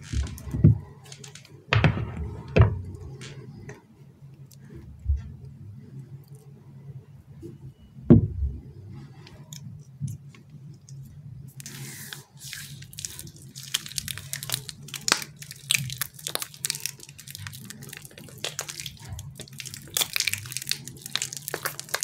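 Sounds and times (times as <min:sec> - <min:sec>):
low steady hum: 0:00.0 - 0:22.0
squishy filling crackling in hands: 0:09.3 - 0:22.0.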